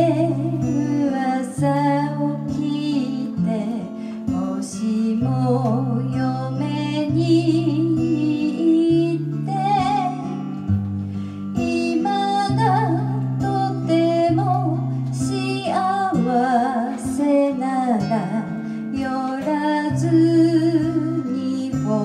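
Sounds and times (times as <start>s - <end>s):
woman singing a slow ballad: 0.0s - 10.8s, 11.4s - 22.0s
acoustic guitar: 0.0s - 22.0s.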